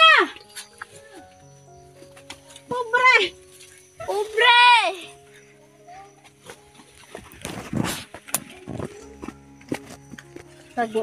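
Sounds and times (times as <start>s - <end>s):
background music: 0.0s - 11.0s
footsteps through leafy undergrowth: 0.0s - 11.0s
twigs snapping: 6.4s - 11.0s.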